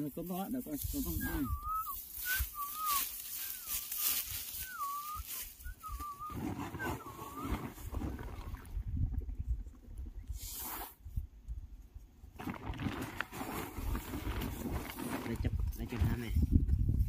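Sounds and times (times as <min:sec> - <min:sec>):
wind rumble on microphone: 0:00.8 - 0:02.6, 0:05.6 - 0:17.0
wavering whistled calls: 0:01.0 - 0:07.9.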